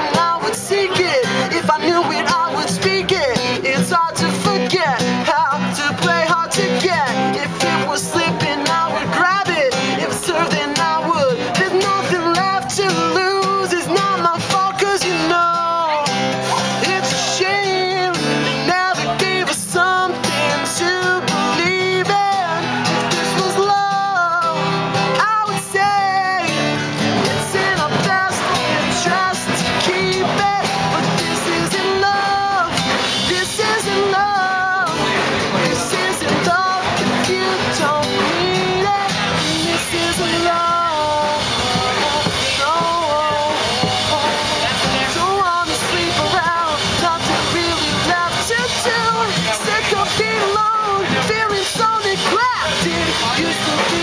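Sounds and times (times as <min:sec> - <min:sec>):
man singing: 0:00.0 - 0:54.0
strummed acoustic guitar: 0:00.0 - 0:54.0.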